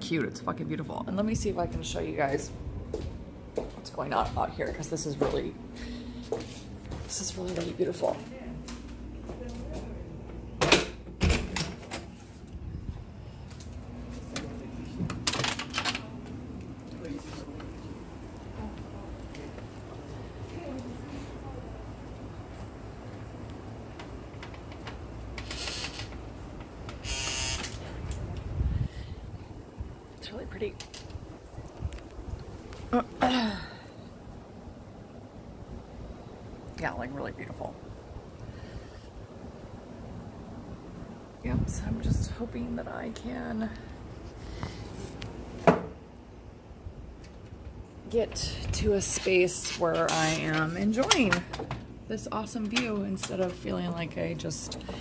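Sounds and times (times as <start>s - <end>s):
wind rumbling on microphone: 12.5s - 13.5s, 27.9s - 33.0s, 37.6s - 43.0s.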